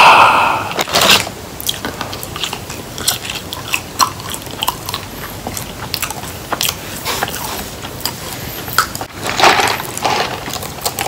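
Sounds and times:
person chewing fries: 0:00.7 - 0:11.0.

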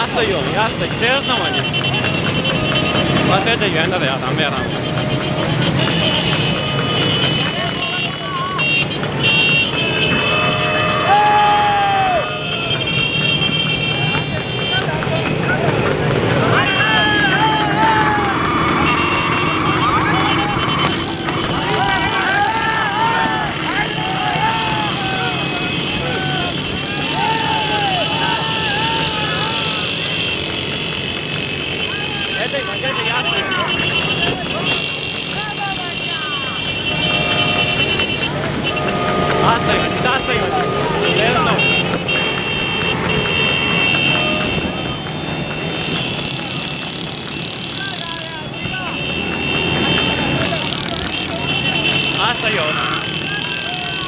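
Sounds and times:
horns sounding: 0:00.0 - 0:54.0
motorcycle engines running: 0:00.0 - 0:54.0
horse galloping: 0:00.8 - 0:52.2
men shouting: 0:10.0 - 0:13.0, 0:15.3 - 0:30.7, 0:31.3 - 0:54.0.

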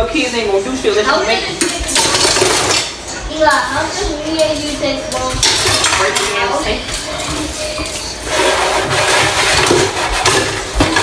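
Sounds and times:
dishes clinking in a metal sink: 0:01.5 - 0:11.0
tap water running: 0:05.4 - 0:11.0.

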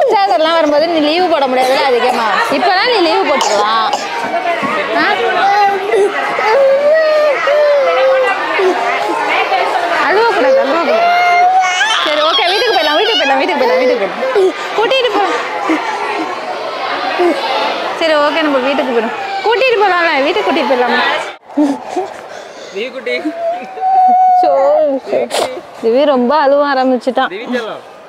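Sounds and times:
chatter of adults and children: 0:00.0 - 0:28.0.

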